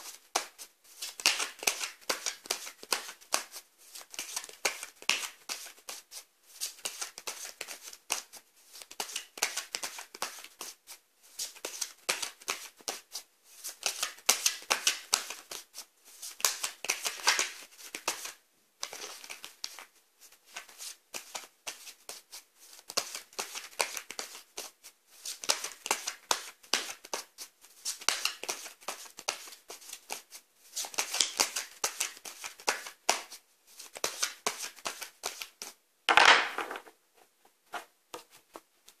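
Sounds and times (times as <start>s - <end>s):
cards being shuffled: 0.4s - 10.8s, 11.4s - 15.6s, 16.2s - 19.9s, 20.5s - 36.9s.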